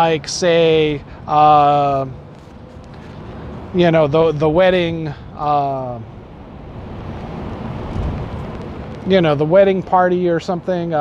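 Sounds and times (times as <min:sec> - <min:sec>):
wind on microphone: 0:02.0 - 0:09.4.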